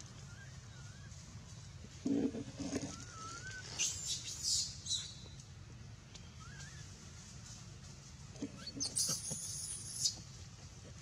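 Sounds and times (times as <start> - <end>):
bird high squeak: 8.6 - 10.2.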